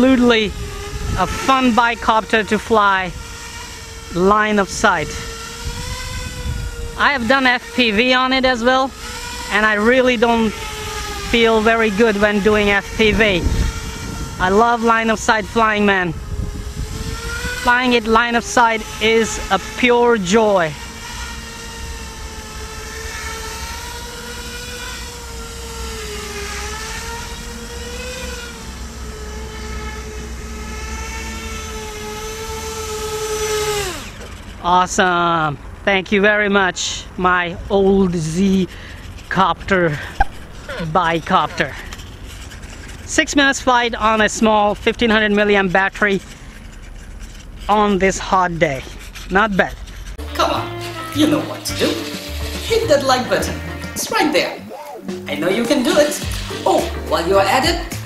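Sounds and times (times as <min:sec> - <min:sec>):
wind rumble on microphone: 0:00.0 - 0:20.9
drone motors whining: 0:00.0 - 0:58.0.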